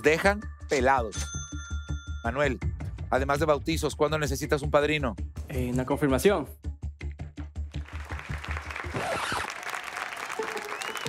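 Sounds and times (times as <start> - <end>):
background music with steady beat: 0.0 - 9.3
audience applauding: 7.8 - 11.0.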